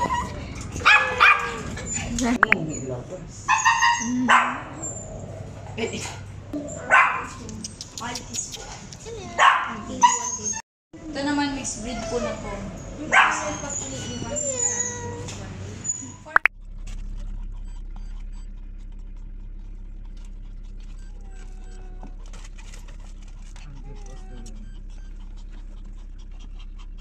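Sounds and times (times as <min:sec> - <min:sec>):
dog barking: 0:00.8 - 0:01.7, 0:03.5 - 0:04.8, 0:06.8 - 0:07.4, 0:09.4 - 0:10.3, 0:13.0 - 0:13.8
dog whining: 0:13.4 - 0:16.3, 0:20.7 - 0:22.8, 0:23.6 - 0:26.9
car low rumble: 0:14.2 - 0:27.0
dog panting: 0:17.2 - 0:27.0.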